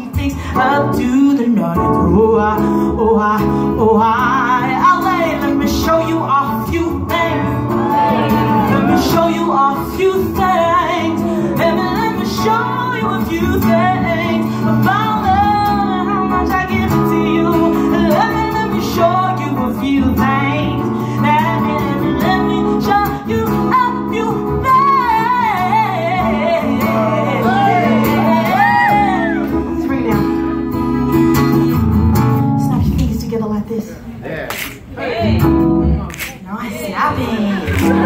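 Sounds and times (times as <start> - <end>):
woman singing: 0.0 - 30.3
acoustic guitar chords: 0.0 - 33.2, 35.1 - 36.3, 37.6 - 38.0.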